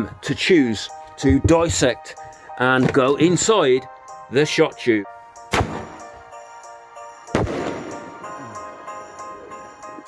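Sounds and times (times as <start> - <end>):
background music: 0.0 - 10.0
firework bang: 5.6 - 6.0, 7.4 - 8.0.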